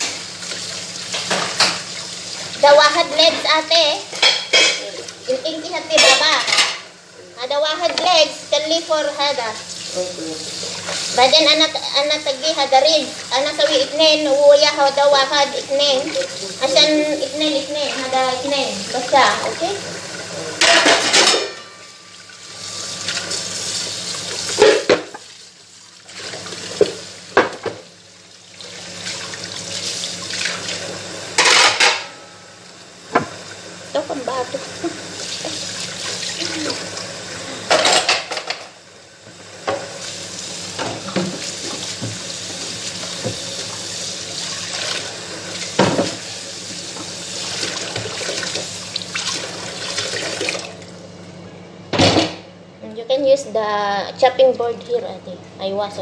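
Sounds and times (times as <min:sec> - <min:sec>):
dishes clinking and clattering: 0:04.1 - 0:05.0, 0:05.9 - 0:06.9, 0:20.6 - 0:22.2, 0:24.5 - 0:25.2, 0:31.4 - 0:32.2, 0:37.6 - 0:38.8
tap running: 0:07.8 - 0:08.3, 0:26.1 - 0:27.9, 0:33.1 - 0:33.6, 0:34.4 - 0:50.9.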